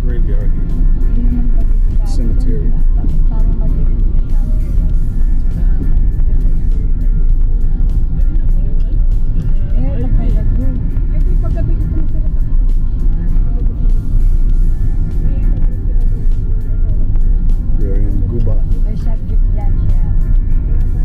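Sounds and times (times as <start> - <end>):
engine and tyres rumbling: 0.0 - 21.0.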